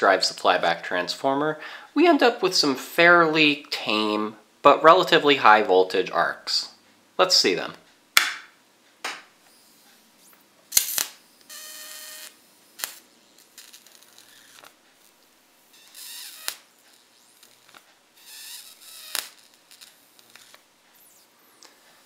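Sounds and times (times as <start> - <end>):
buzzing arc sizzles: 9.3 - 22.0
electric arc snaps: 10.2 - 22.0.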